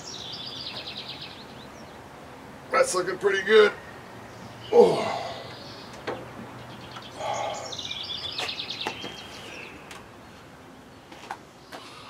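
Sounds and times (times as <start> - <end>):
songbird chirping: 0.0 - 12.0.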